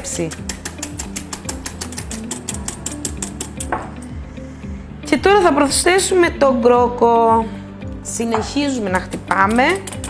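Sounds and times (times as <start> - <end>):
whisk clicking against bowl: 0.0 - 3.7, 9.3 - 10.0
background music: 0.0 - 10.0.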